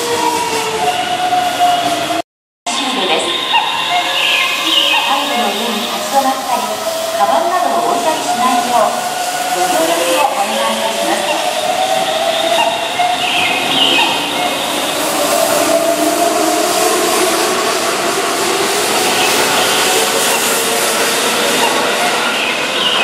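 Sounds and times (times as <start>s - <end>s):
wheels rumbling on rail: 0.0s - 23.0s.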